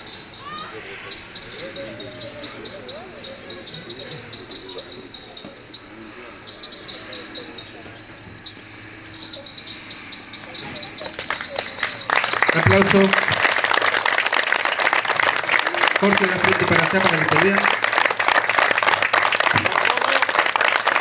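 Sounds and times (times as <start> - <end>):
faint murmuring voices: 0.0 - 13.5
crickets chirping: 0.0 - 20.0
hand claps: 10.6 - 21.0.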